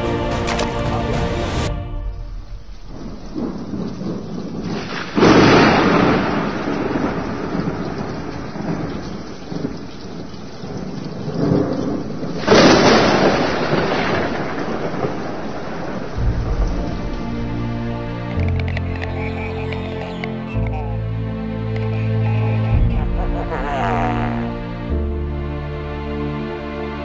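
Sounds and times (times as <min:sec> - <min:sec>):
steady rain: 0:00.0 - 0:27.0
thunder claps rumbling: 0:01.7 - 0:20.0.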